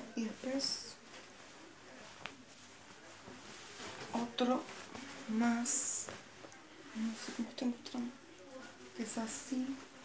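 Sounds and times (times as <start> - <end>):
cloth trousers rustling: 0.0 - 10.0.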